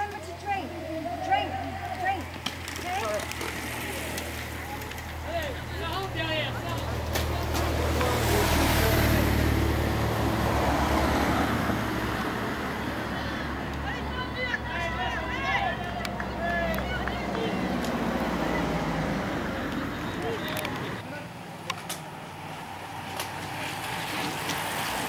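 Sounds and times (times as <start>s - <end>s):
voices of onlookers: 0.0s - 25.0s
car passing close by: 1.6s - 21.0s, 21.7s - 25.0s.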